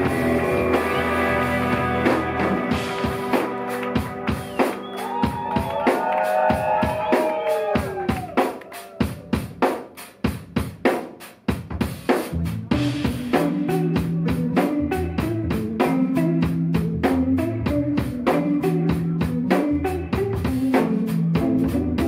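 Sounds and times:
electric bass line: 0.0 - 5.8, 12.3 - 22.0
electric guitar chords sliding down: 0.0 - 9.6
drum kit beat: 0.0 - 22.0.

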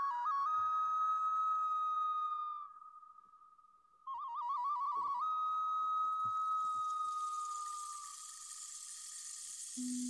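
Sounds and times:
low hum-like tone: 6.8 - 10.0
airy hiss: 7.3 - 10.0.

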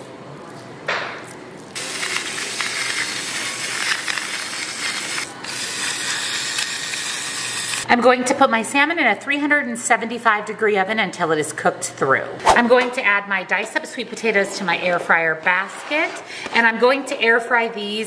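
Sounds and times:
electric grinder motor grinding: 1.8 - 7.9.

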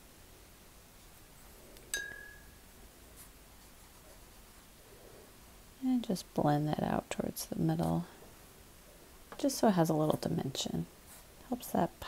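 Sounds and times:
hard object clinking: 1.9 - 2.6.

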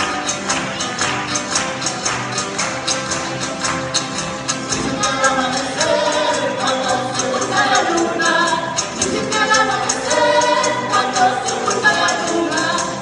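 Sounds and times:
steady percussive beat: 0.0 - 13.0
strummed guitars: 0.0 - 13.0
voices singing together: 4.7 - 13.0.

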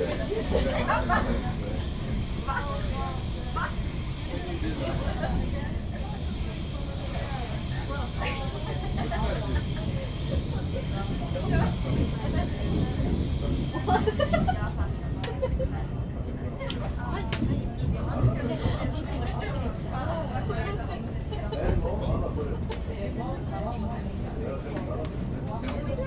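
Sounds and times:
high steady train whine: 0.0 - 26.0
passengers talking: 0.0 - 26.0
train low rumble: 0.0 - 26.0.

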